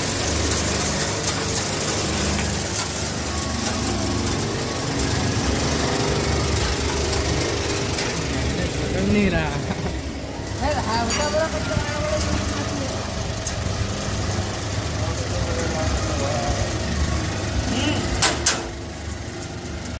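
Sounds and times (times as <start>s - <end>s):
grain-cleaning machine humming: 0.0s - 20.0s
indistinct voices: 7.9s - 13.5s, 17.5s - 18.3s.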